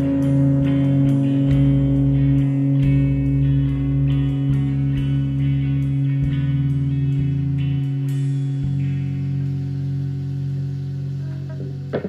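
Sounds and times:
electric guitar chord ringing: 0:00.0 - 0:12.0.

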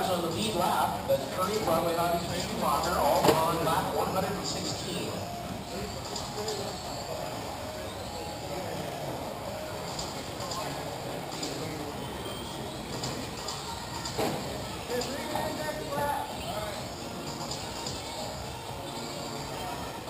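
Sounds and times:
steady background noise: 0:00.0 - 0:20.0.

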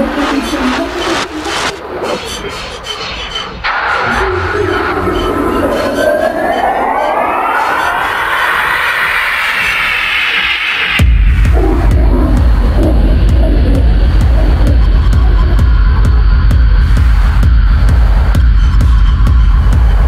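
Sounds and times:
dark techno music: 0:00.0 - 0:20.0
rising synth sweep: 0:03.6 - 0:17.5.

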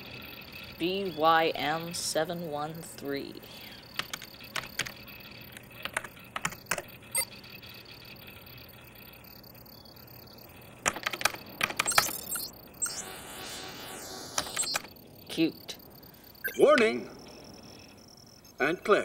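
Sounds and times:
computer keyboard typing: 0:03.9 - 0:07.4, 0:10.8 - 0:13.0, 0:14.4 - 0:14.9.

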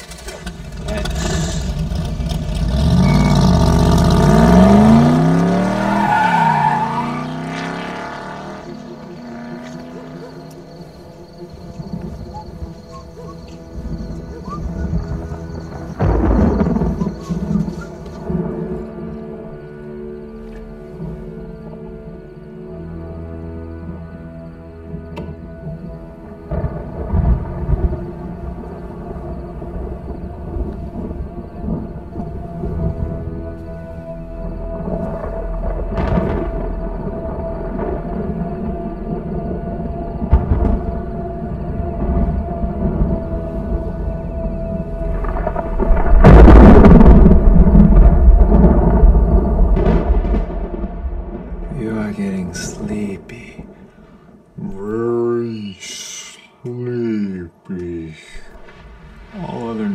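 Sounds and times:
rolling thunder: 0:00.0 - 0:19.7, 0:25.0 - 0:54.7, 0:58.5 - 0:59.9
sustained music score: 0:00.0 - 0:59.9
sharp thunder crack: 0:11.6 - 0:19.2, 0:26.5 - 0:33.4, 0:34.6 - 0:54.7, 0:58.5 - 0:59.9.

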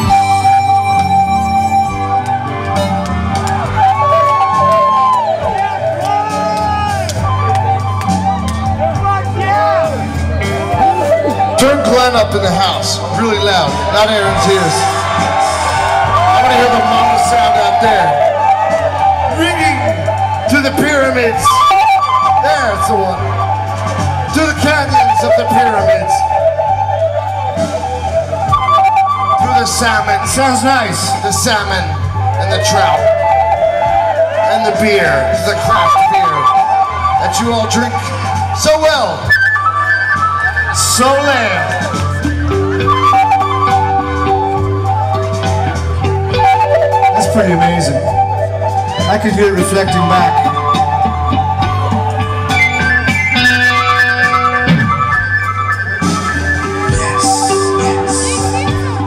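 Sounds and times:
rock band playing instrumental: 0:00.0 - 0:59.0.

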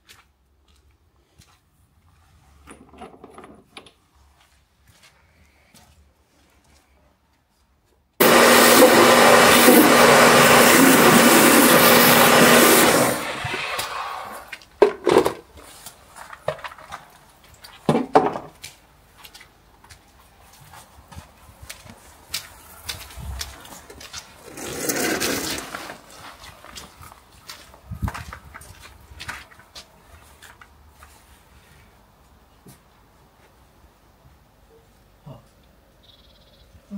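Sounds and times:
pressure washer motor humming: 0:08.2 - 0:14.5.

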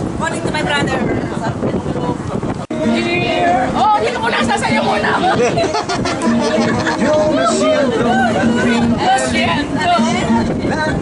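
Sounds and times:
people chatting: 0:00.2 - 0:11.0
background music: 0:02.7 - 0:10.6.

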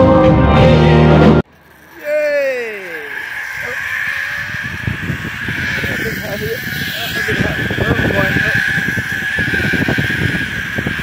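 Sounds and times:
live rock music: 0:00.0 - 0:01.4
zip-line trolley whirring: 0:01.4 - 0:11.0
person calling out: 0:02.0 - 0:04.3
wind rumble: 0:02.5 - 0:11.0.

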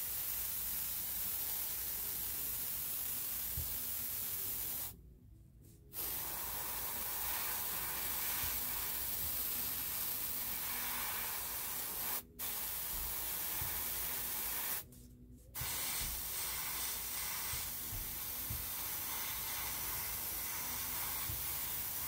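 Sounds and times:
airbrush spraying hiss: 0:00.0 - 0:05.0, 0:05.9 - 0:15.0, 0:15.6 - 0:22.0.

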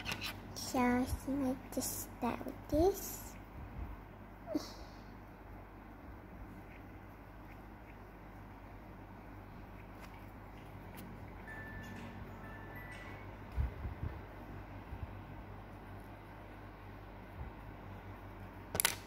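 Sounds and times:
faint room hum: 0:00.0 - 0:19.0.

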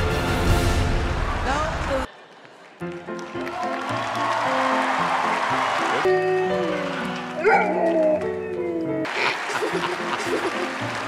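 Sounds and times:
dog howling: 0:07.4 - 0:09.0.

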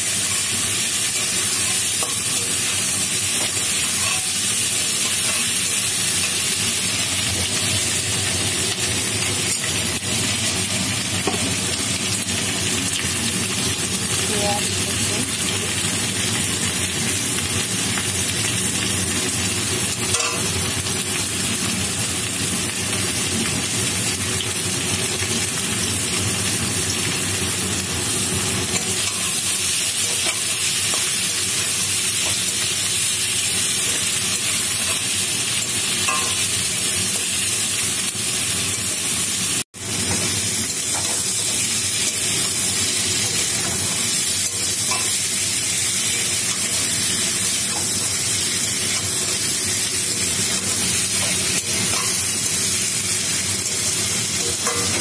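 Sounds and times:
potatoes sizzling in hot oil: 0:00.0 - 0:55.0.

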